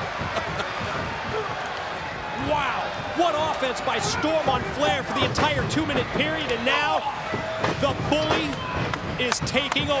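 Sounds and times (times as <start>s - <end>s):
arena crowd noise: 0.0s - 10.0s
man talking: 2.4s - 7.1s, 7.7s - 8.6s, 9.2s - 10.0s.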